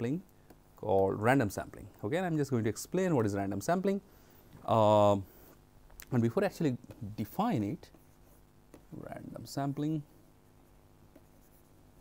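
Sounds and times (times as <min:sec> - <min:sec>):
low room hum: 0:00.0 - 0:12.0
stylus strokes on pen tablet: 0:07.8 - 0:08.9, 0:10.2 - 0:12.0.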